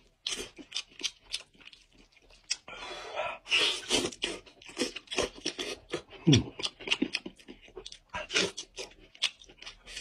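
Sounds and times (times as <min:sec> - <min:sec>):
chewing and lip-smacking: 0:00.0 - 0:02.8, 0:03.6 - 0:10.0.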